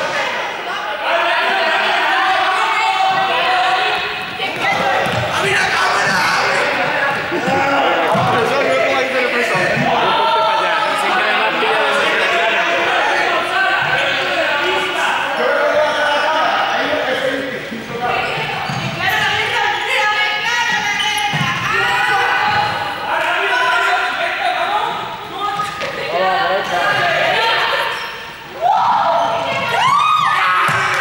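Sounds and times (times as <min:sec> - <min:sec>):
young people shouting: 0:00.0 - 0:17.1, 0:19.0 - 0:31.0
ball bouncing on hall floor: 0:04.4 - 0:06.5, 0:20.6 - 0:22.8, 0:25.5 - 0:26.1, 0:29.5 - 0:31.0.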